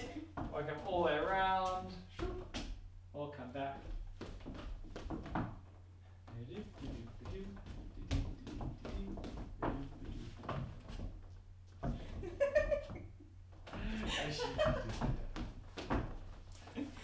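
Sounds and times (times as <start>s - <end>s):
low steady hum: 0.0s - 17.0s
shoes shuffling on hardwood floor: 6.3s - 13.0s, 13.6s - 17.0s.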